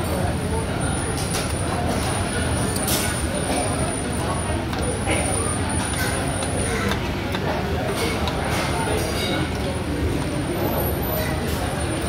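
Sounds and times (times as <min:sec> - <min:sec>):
diners chatting: 0:00.0 - 0:12.0.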